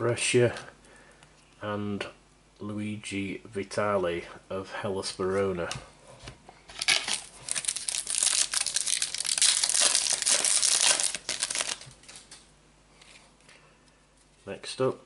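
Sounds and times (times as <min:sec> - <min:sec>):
plastic wrapper tearing and crinkling: 0:06.7 - 0:12.4.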